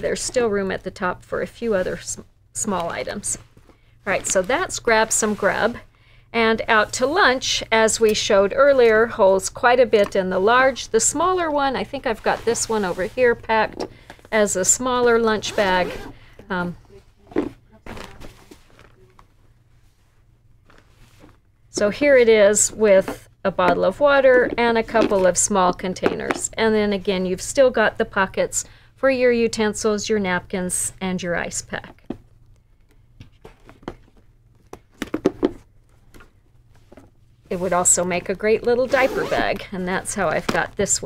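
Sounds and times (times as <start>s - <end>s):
fabric rustling: 16.9s - 21.9s.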